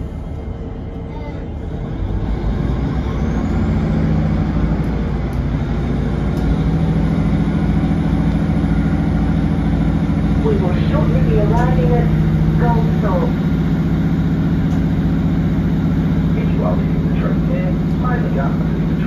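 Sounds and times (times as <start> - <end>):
diesel train engine drone: 0.0 - 19.0.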